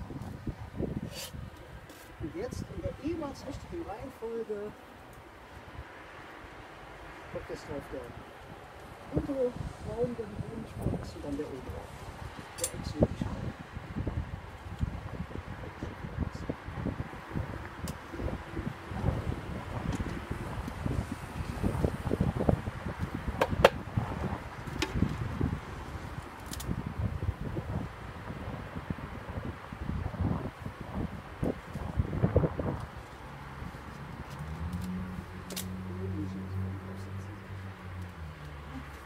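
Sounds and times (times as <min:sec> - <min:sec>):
wind buffeting microphone: 0:00.0 - 0:06.5, 0:07.2 - 0:38.2.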